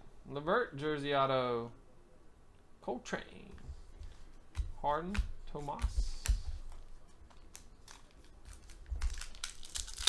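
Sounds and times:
plastic and foil wrappers crinkling: 0:07.0 - 0:10.0.

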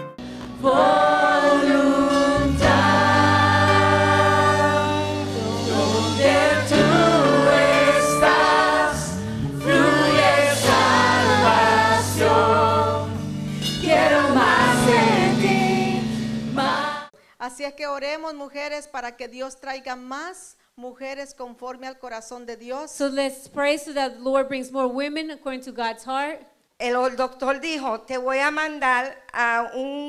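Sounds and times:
instrumental backing with held chords: 0:00.0 - 0:17.1
people singing worship song: 0:00.2 - 0:17.1.

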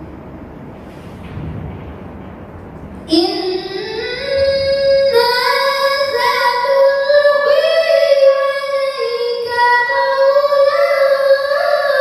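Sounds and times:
girl chanting into a microphone: 0:03.1 - 0:12.0.

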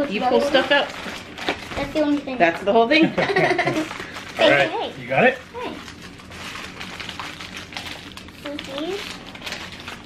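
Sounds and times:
plastic packaging crinkling: 0:00.0 - 0:02.6, 0:03.4 - 0:10.0.

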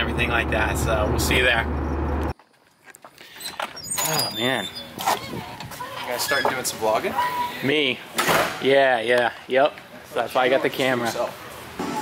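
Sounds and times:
car cabin engine and road drone: 0:00.0 - 0:02.3.

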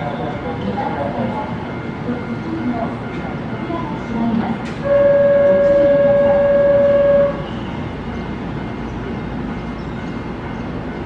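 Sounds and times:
train horn steady tone: 0:04.6 - 0:08.0.

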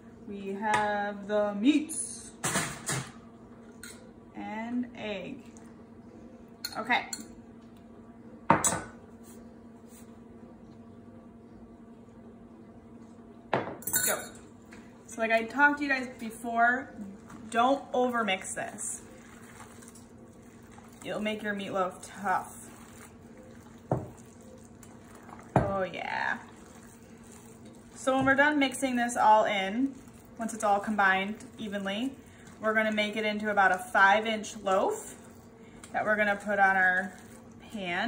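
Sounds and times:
steady low hum: 0:00.0 - 0:38.0
hands squishing wet meat: 0:19.0 - 0:21.2, 0:22.1 - 0:25.5, 0:26.4 - 0:28.0, 0:29.7 - 0:33.0, 0:37.0 - 0:37.7.

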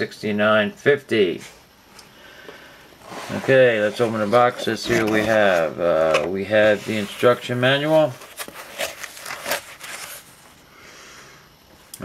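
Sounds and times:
paper rustling and crackling: 0:03.3 - 0:10.4.

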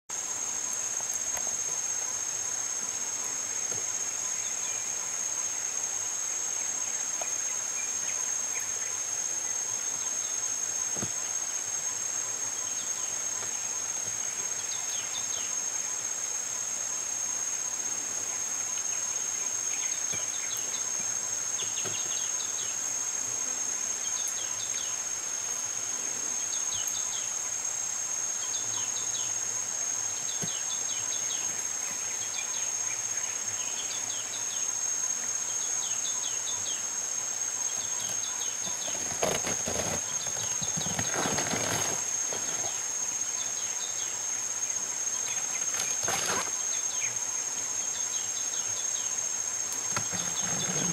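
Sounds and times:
insect chorus chirping: 0:00.1 - 0:50.9.

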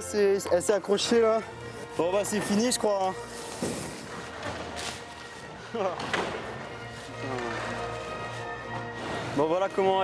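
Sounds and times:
synthetic fabric rustling: 0:01.9 - 0:10.0.

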